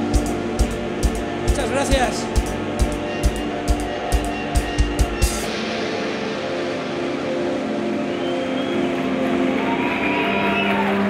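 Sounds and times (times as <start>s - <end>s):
guitar amplifier feedback drone: 0.0s - 11.0s.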